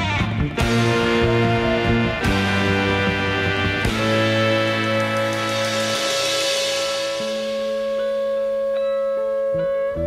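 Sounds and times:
progressive rock sustained chords: 0.0s - 10.0s.

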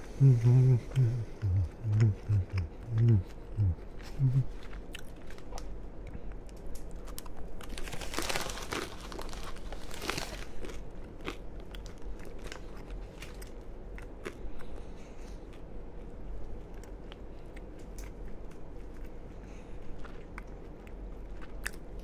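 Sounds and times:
chewing mouth sounds: 0.2s - 6.5s, 8.8s - 22.0s
paper wrapper crinkling: 6.9s - 10.8s.

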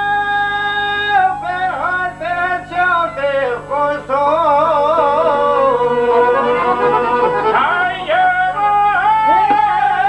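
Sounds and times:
man singing folk song: 0.0s - 10.0s.

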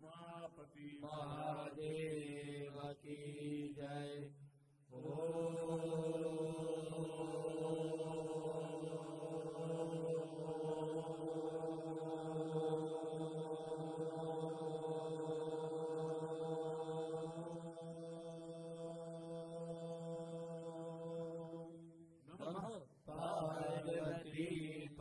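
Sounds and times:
person chanting om: 0.0s - 25.0s.

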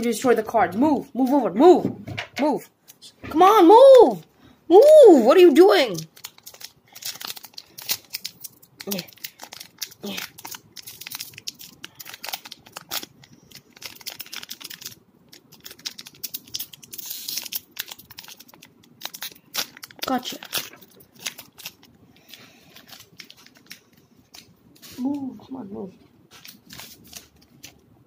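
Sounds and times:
foil wrapper crinkling: 5.5s - 25.4s, 26.2s - 27.9s.

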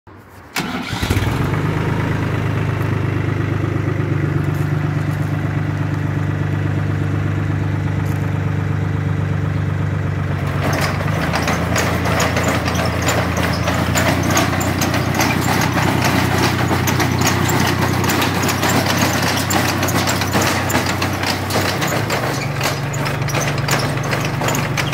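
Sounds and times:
tractor engine running: 0.4s - 24.9s
metallic clatter of aerator tines: 10.4s - 24.9s.

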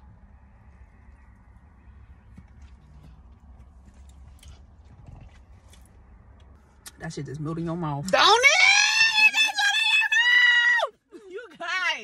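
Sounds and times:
low rumble inside car: 0.0s - 12.0s.

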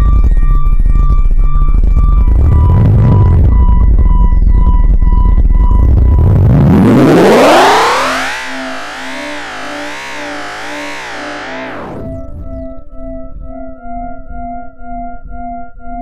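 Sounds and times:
synthesizer tone with vibrato: 0.0s - 15.5s
loud low throb: 1.6s - 13.6s.

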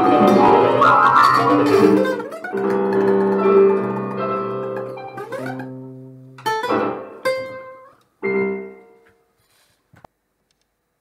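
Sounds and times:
electronic keyboard chords: 0.0s - 8.9s.

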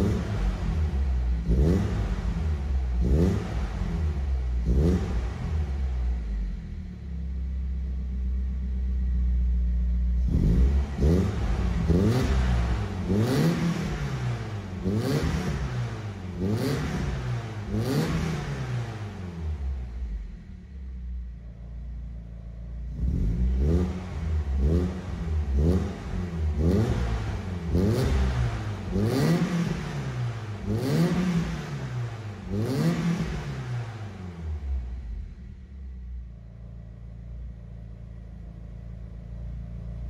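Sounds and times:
car engine revving and idling: 0.0s - 40.0s.

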